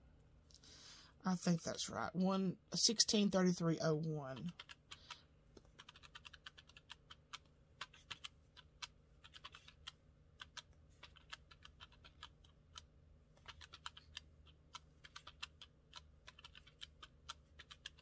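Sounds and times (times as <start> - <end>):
calculator keys clicking: 4.4 - 18.0.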